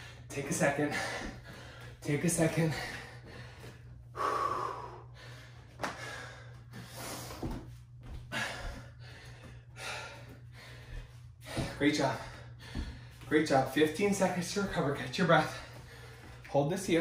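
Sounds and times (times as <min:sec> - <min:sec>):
man breathing hard: 0:00.0 - 0:13.3, 0:15.4 - 0:16.5.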